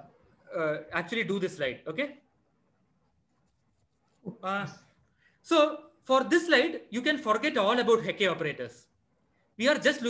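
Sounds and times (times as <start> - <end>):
man speaking: 0.0 - 2.3, 4.2 - 8.9, 9.6 - 10.0.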